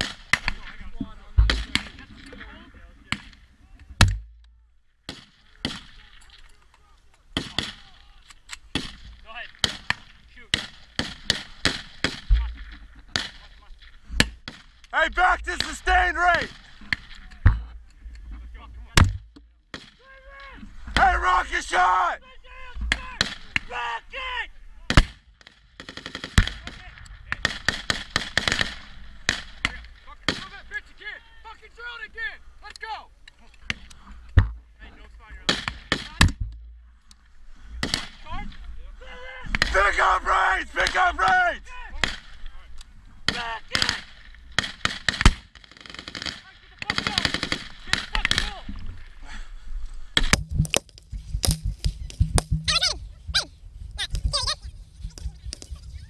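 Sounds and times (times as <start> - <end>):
men shouting: 15.0 - 16.5, 20.2 - 22.7, 39.0 - 41.9
rifle shots: 27.4 - 30.5, 43.3 - 48.6.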